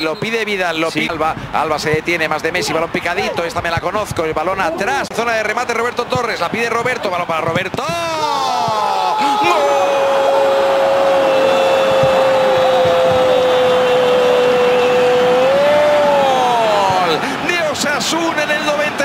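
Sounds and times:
commentator shouting goal: 0:07.8 - 0:10.1
excited talk: 0:07.8 - 0:19.0.

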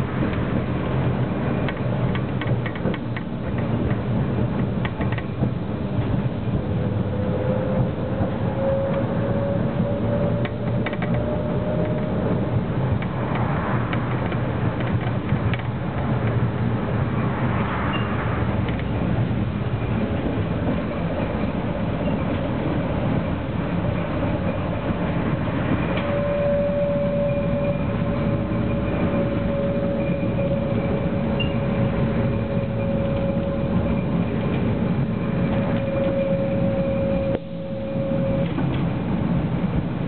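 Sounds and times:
tram rumbling on track: 0:00.0 - 0:40.0
tram whine: 0:00.0 - 0:40.0.

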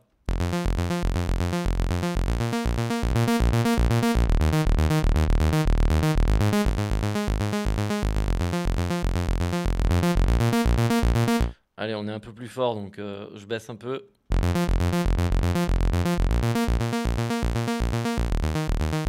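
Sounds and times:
sequenced synth bass line: 0:00.3 - 0:11.6, 0:14.3 - 0:19.0.

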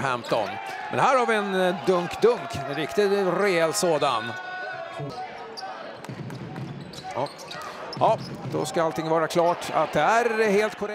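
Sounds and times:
knocks and squeaks on court: 0:00.0 - 0:00.6, 0:05.4 - 0:09.7.

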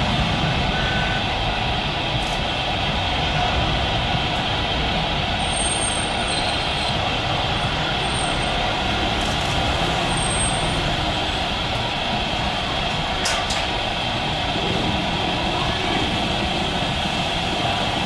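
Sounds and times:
jet engines roaring: 0:00.0 - 0:18.0.

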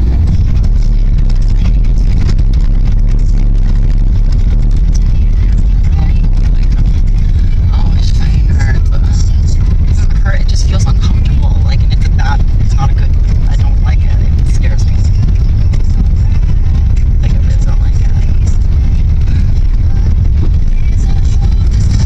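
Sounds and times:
car road and engine rumble: 0:00.0 - 0:22.0.

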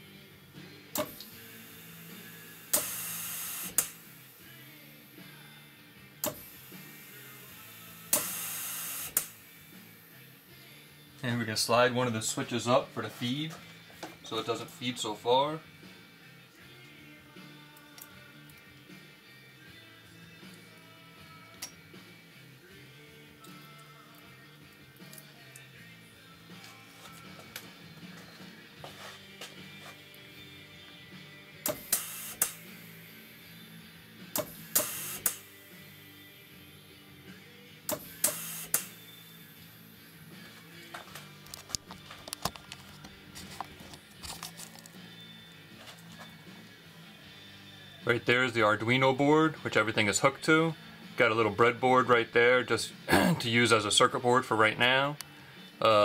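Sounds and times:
background music: 0:00.0 - 0:56.0
pneumatic cylinder bursts: 0:01.0 - 0:01.3, 0:02.6 - 0:04.0, 0:06.2 - 0:06.6, 0:08.1 - 0:09.4, 0:31.6 - 0:32.7, 0:34.4 - 0:35.5, 0:37.9 - 0:39.0.

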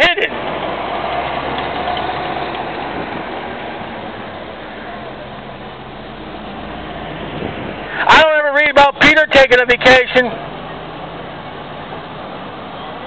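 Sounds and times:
low engine-like hum: 0:00.3 - 0:13.0.

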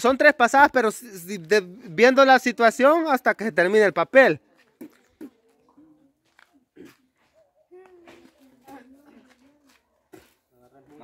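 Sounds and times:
faint muffled voice: 0:04.6 - 0:11.0.

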